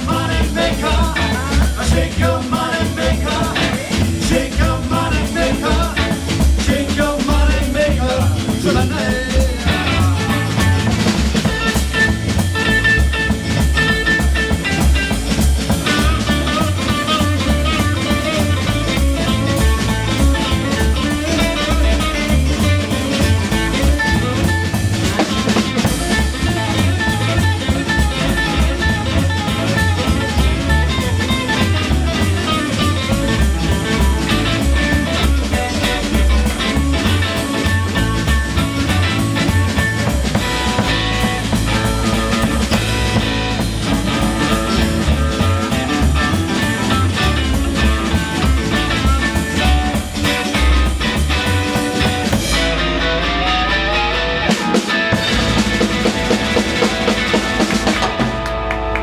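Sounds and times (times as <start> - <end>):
bass guitar: 0.0 - 59.0
drum kit beat: 0.0 - 59.0
electric guitars: 0.0 - 59.0.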